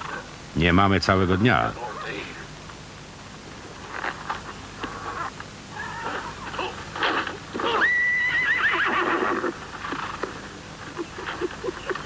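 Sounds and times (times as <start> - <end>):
horse whinnying: 5.1 - 10.2.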